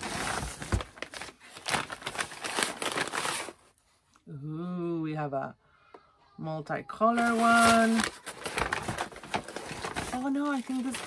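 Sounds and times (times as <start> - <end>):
paper bag crinkling and rustling: 0.0 - 3.7, 7.0 - 11.0.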